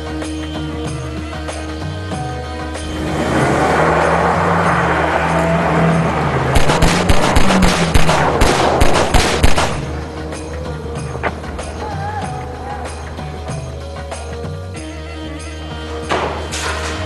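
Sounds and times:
background music: 0.0 - 17.0
car engine revving: 1.4 - 11.9
tyres crunching over gravel: 2.4 - 8.4
rapid gunfire: 6.6 - 10.0.

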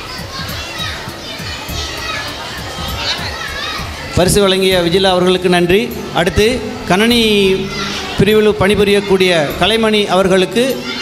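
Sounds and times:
children chattering and calling out: 0.0 - 11.0
music playing: 0.0 - 11.0.

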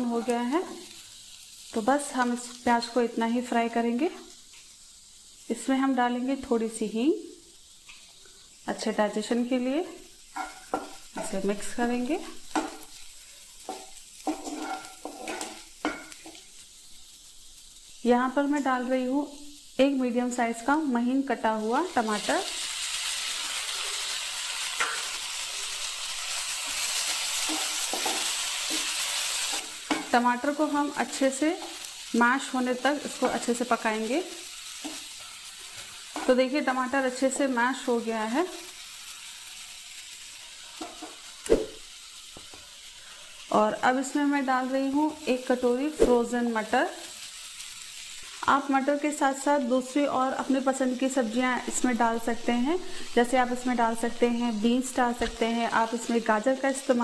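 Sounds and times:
onions sizzling in a frying pan: 0.0 - 57.0
spatula scraping a pan: 10.4 - 11.4, 13.6 - 16.5.

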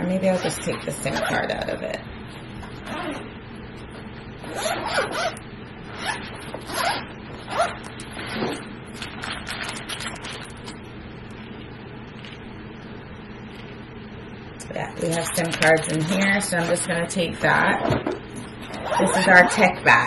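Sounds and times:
zipper pulled open: 2.8 - 3.3, 4.4 - 8.7, 18.6 - 19.6.

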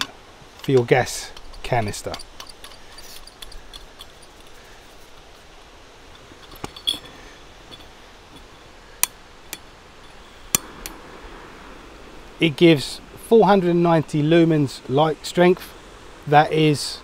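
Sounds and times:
metal and glass clinks: 0.6 - 4.6, 6.2 - 8.5.

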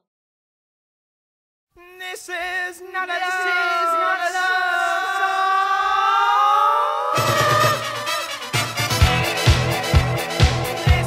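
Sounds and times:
sung vocal note sliding upward: 4.6 - 8.6.

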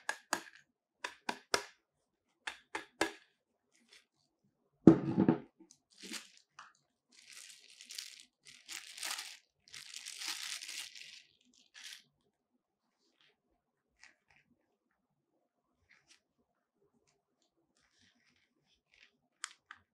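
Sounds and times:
metal dish thudding on table: 4.9 - 5.5
plastic bag crinkling: 5.8 - 12.1.

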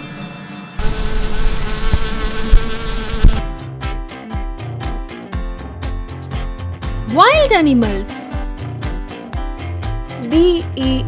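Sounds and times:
cartoon bee buzzing: 0.8 - 3.4
upbeat children's music: 3.5 - 11.0.

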